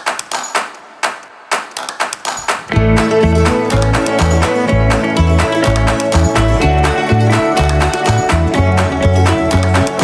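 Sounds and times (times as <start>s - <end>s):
sharp plucked notes: 2.7s - 10.0s.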